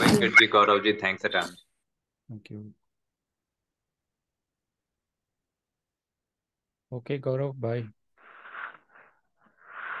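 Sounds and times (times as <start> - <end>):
person breathing into microphone: 8.2 - 10.0.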